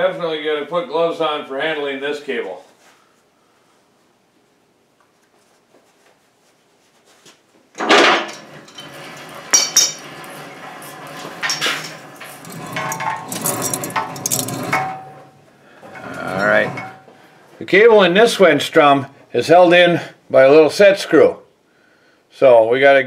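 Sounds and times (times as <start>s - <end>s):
cable scraping over metal boom: 7.8s - 17.2s
metallic clanks of winch cable: 7.8s - 17.2s.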